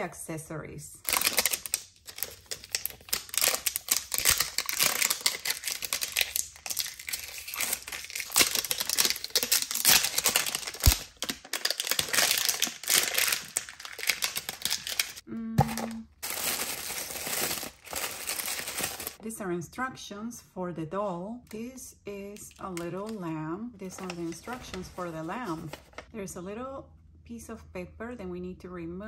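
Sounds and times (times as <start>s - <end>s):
plastic wrappers crinkling and tearing: 1.0s - 19.2s, 23.8s - 26.1s.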